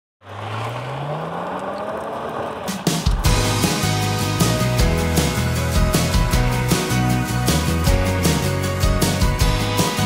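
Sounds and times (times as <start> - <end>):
car engine accelerating: 0.2 - 8.7.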